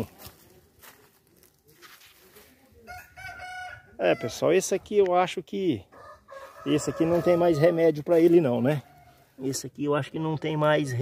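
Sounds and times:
rooster crowing: 2.9s - 4.4s, 5.9s - 7.9s.

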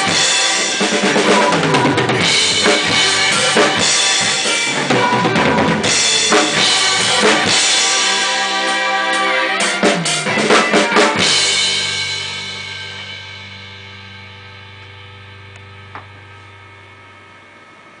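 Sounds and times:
drum kit hits: 0.0s - 14.8s.

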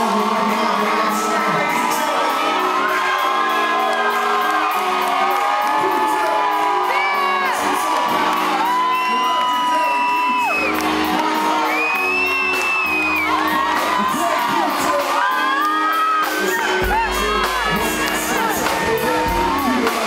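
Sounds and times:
audience whooping: 0.0s - 20.0s
live band playing: 0.0s - 20.0s.

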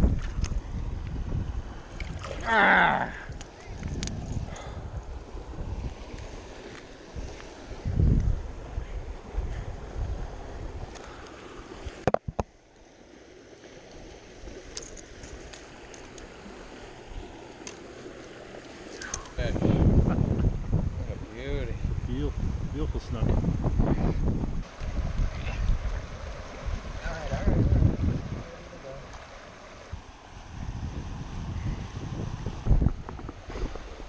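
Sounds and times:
wind rumbling on microphone: 0.0s - 12.5s, 18.9s - 34.0s.

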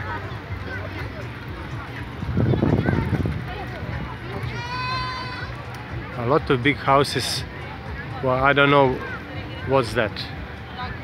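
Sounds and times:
voices of passers-by: 0.0s - 11.0s.

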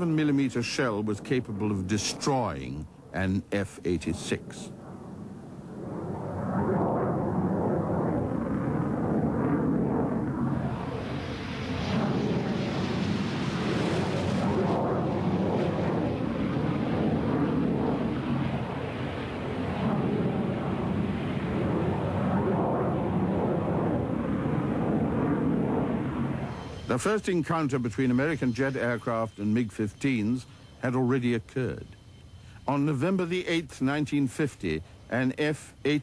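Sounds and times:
jet engine noise: 0.0s - 36.0s.

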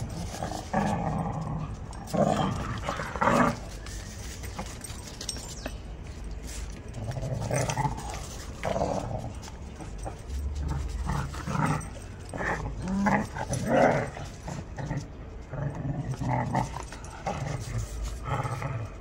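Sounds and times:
dogs growling in play: 0.0s - 5.2s, 6.5s - 19.0s.

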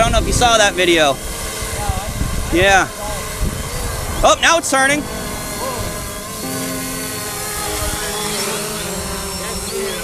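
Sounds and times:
wind rumble on microphone: 0.0s - 6.4s
drone propellers whining: 0.0s - 10.0s.

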